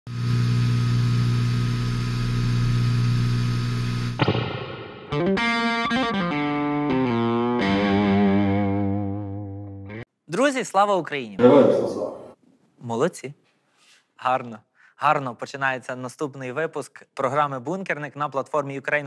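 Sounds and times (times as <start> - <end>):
distorted electric guitar: 0.1 - 10.0.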